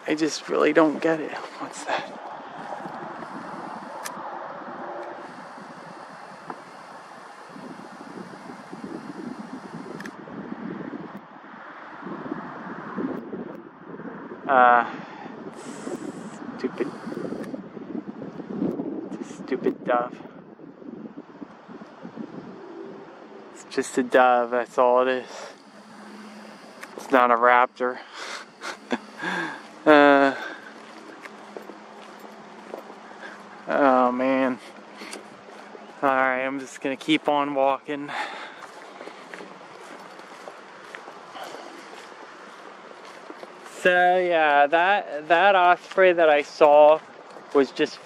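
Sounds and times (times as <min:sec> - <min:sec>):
footsteps on paved path: 0:00.0 - 0:10.2, 0:15.6 - 0:18.6, 0:25.2 - 0:48.0
wind buffeting microphone: 0:00.0 - 0:48.0
outdoor air hiss: 0:02.6 - 0:10.2, 0:15.0 - 0:17.6, 0:23.5 - 0:48.0.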